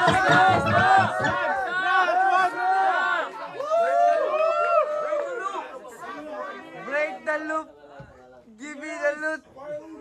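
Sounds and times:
people talking and calling out: 0.0 - 3.6.

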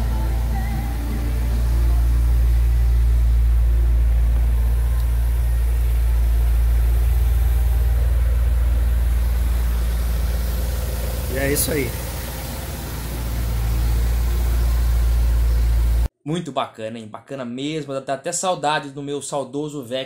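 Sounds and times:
car engine idling: 0.0 - 16.1.

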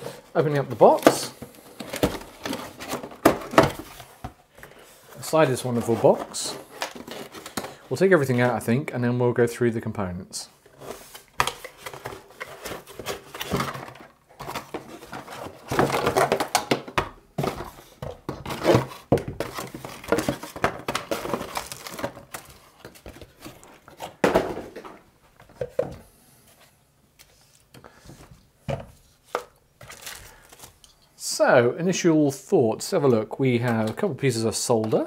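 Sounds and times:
cardboard and packaging rustling: 0.0 - 8.6, 10.6 - 31.0.

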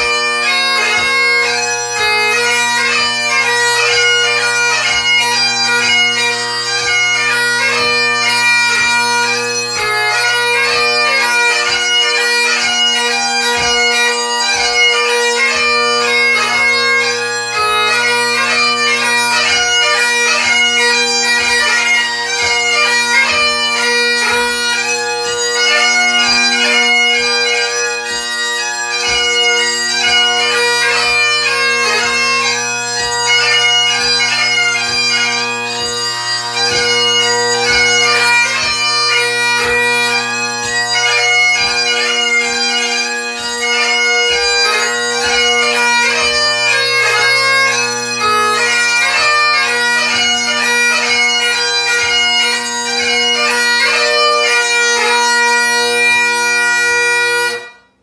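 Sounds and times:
bagpipe drones: 0.0 - 58.0
bagpipe march melody: 0.0 - 58.0.

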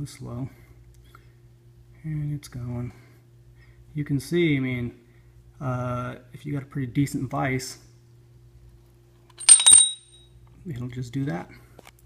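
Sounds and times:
high bell-like metal ring: 9.4 - 10.2.

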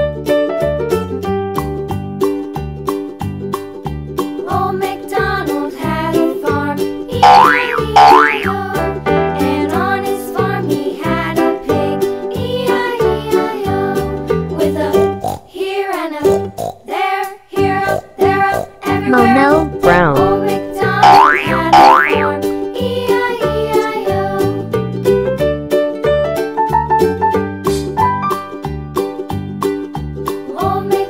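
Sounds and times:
cheerful children's music: 0.0 - 31.0
cartoon whistle glide effect: 7.2 - 8.6
rising cartoon glide effects: 7.2 - 8.7, 21.0 - 22.4.

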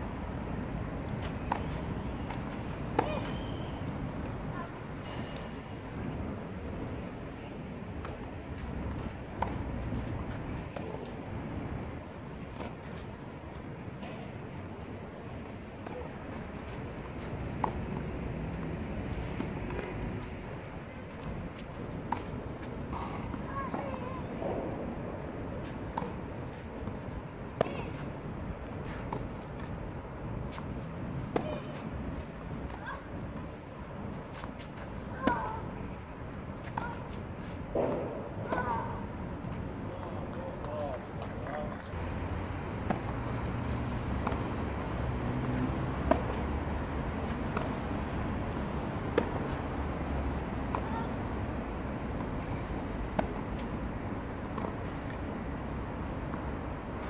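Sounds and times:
tennis ball struck by rackets: 37.7 - 39.0, 42.8 - 43.5, 44.1 - 44.6, 45.4 - 46.4, 49.1 - 49.7, 53.1 - 53.5.

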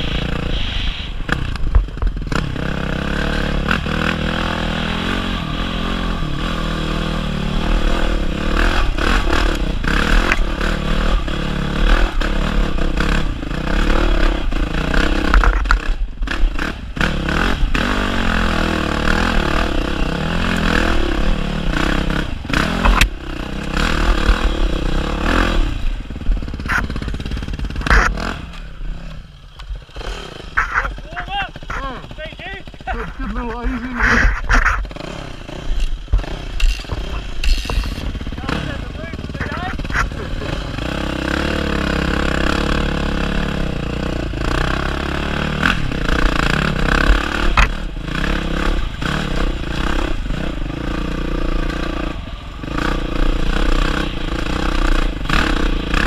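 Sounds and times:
dirt bike engine revving: 0.0 - 56.0
bike clattering over bumps: 35.7 - 40.3.

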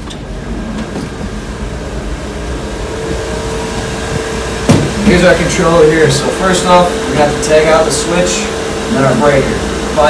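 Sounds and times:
machinery and ventilation hum: 0.0 - 10.0
steady tone: 0.0 - 10.0.

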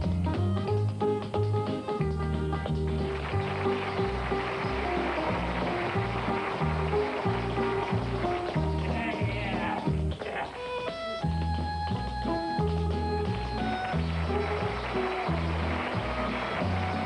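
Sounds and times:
tap shoes clicking on stage: 0.0 - 17.0
upbeat band music: 0.0 - 17.0.

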